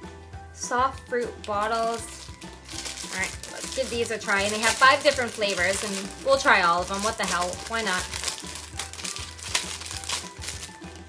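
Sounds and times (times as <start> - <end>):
candy packaging crinkling: 0.9 - 11.0.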